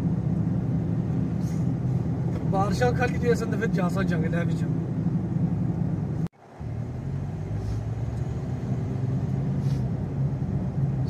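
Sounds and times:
car engine hum: 0:00.0 - 0:11.0
tyres on wet road: 0:00.0 - 0:11.0.

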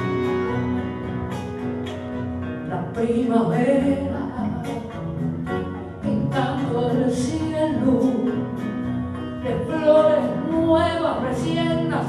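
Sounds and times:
guitar accompaniment: 0:00.0 - 0:12.0
woman singing folk song: 0:02.4 - 0:12.0.

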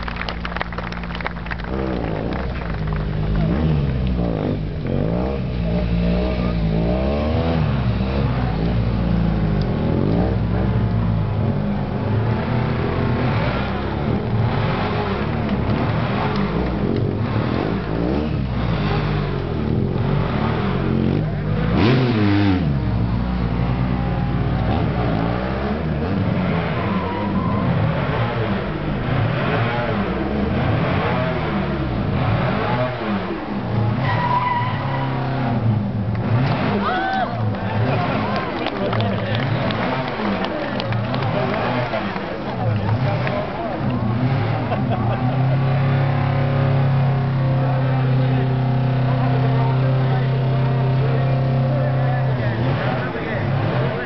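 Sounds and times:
motorcycle engine revving: 0:00.1 - 0:54.0.

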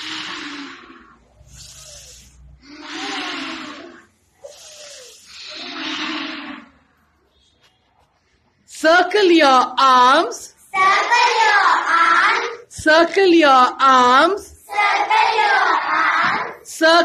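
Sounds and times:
children breathing deeply: 0:00.0 - 0:07.2.

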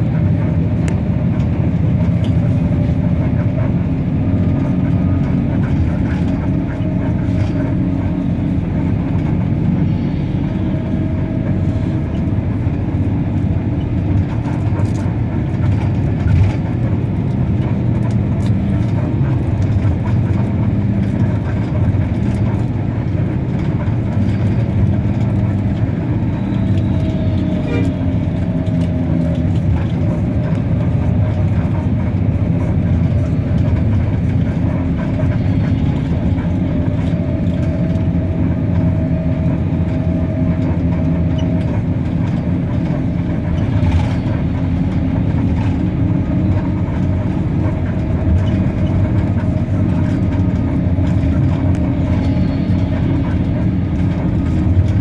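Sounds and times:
bus engine and tyre rumble: 0:00.0 - 0:55.0.

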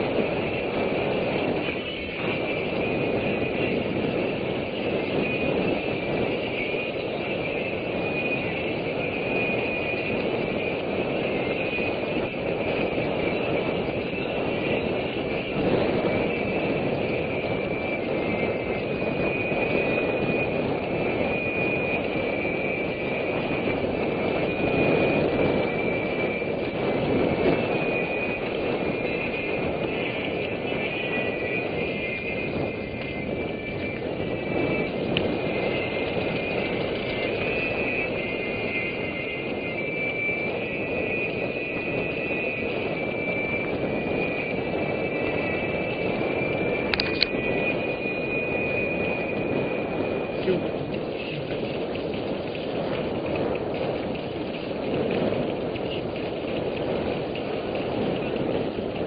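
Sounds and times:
wavering high whine from bike: 0:00.0 - 0:59.0
wind on microphone: 0:00.0 - 0:59.0.

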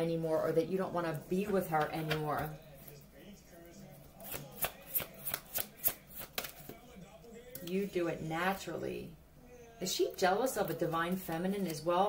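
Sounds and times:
cards being shuffled: 0:04.2 - 0:06.8.

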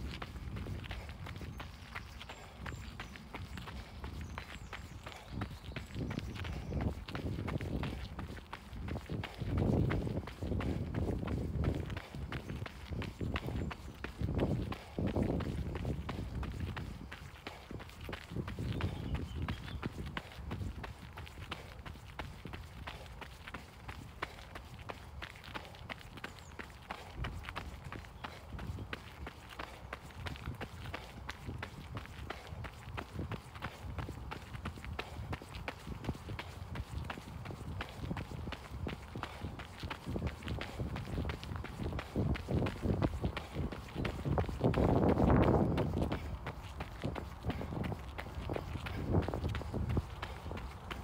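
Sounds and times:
running footsteps on gravel: 0:00.0 - 0:51.0.

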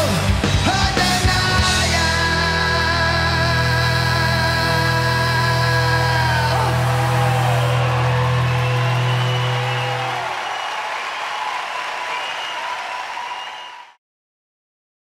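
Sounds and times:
audience applause: 0:06.0 - 0:14.0.

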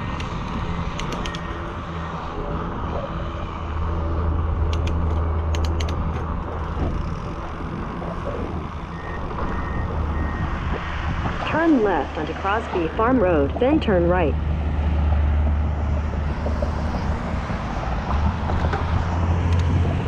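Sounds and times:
wind rushing on microphone: 0:00.0 - 0:20.0
sharp clicks: 0:00.2 - 0:01.5, 0:04.7 - 0:06.6.

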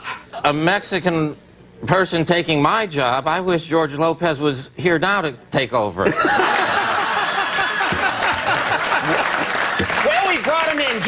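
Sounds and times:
audience laughter: 0:06.1 - 0:10.2
audience applauding: 0:06.5 - 0:11.0.

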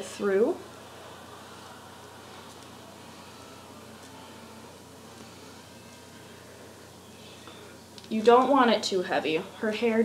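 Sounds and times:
faint low hum: 0:00.0 - 0:10.0
steady low hiss: 0:00.0 - 0:10.0.

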